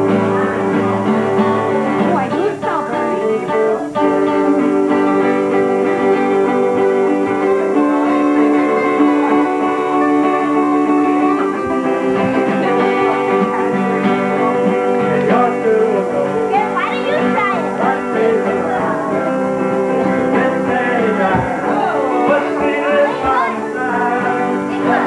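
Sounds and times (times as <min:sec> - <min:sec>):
acoustic guitar: 0:00.0 - 0:25.0
electric guitar: 0:00.0 - 0:25.0.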